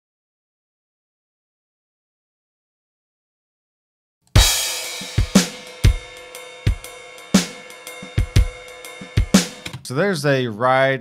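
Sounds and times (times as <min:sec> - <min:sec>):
crash cymbal hit: 0:04.4 - 0:09.7
ride cymbal ringing: 0:04.4 - 0:09.7
drum kit shuffle groove: 0:04.4 - 0:10.1.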